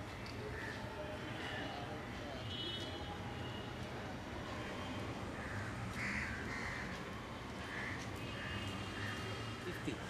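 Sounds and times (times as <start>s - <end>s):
faint outdoor background: 0.0s - 10.0s
crows cawing: 0.5s - 1.8s, 5.3s - 9.6s.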